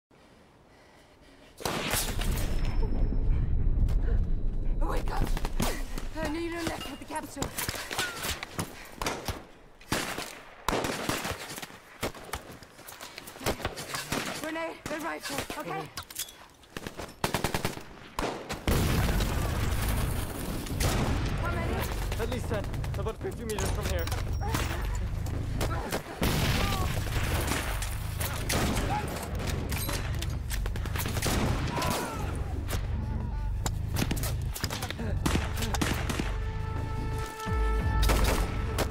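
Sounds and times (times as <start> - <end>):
echoing gunshots: 9.0 - 12.5, 16.8 - 23.2, 25.5 - 33.0, 34.3 - 36.5
rapid rifle shots: 16.8 - 23.7
explosion: 18.7 - 21.5.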